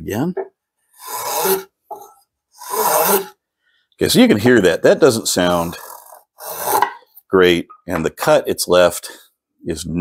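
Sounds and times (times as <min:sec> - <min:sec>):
hand plane rasping across wood: 0:01.0 - 0:03.4, 0:05.4 - 0:07.0.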